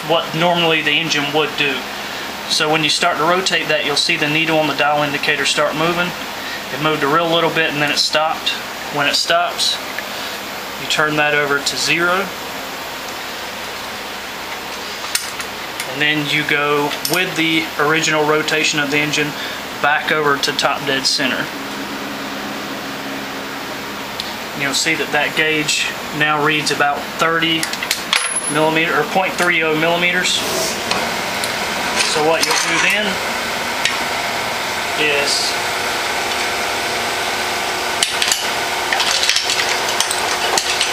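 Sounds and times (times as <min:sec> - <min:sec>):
room noise: 0:00.0 - 0:40.9.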